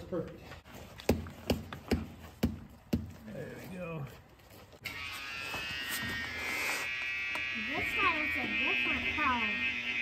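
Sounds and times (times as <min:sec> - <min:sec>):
electric pump buzzing: 0:04.8 - 0:10.0.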